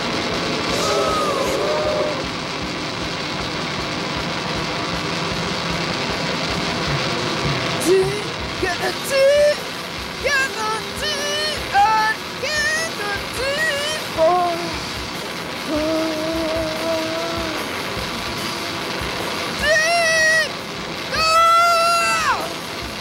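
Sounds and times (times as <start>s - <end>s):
gliding pitched squeals: 0.0s - 3.0s
noisy electric guitar band: 0.0s - 23.0s.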